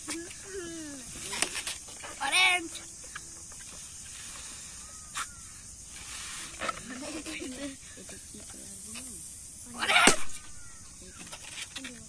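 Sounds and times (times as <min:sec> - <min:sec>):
breath hissing into balloon: 0:03.6 - 0:08.0.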